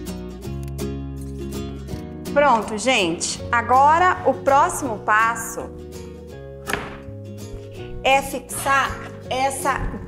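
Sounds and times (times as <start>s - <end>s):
background music: 0.0s - 10.0s
wooden panel knock: 6.7s - 7.1s.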